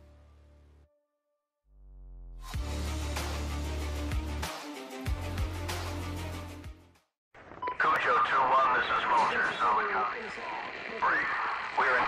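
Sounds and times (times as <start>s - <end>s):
radio beep: 7.6s - 9.6s
voice over radio: 7.7s - 12.0s.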